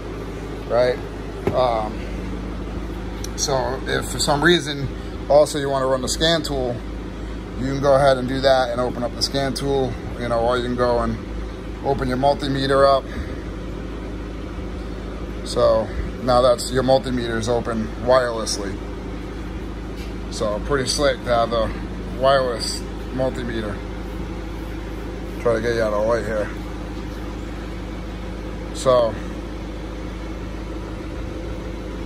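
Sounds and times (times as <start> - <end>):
low mechanical hum: 0.0 - 32.0.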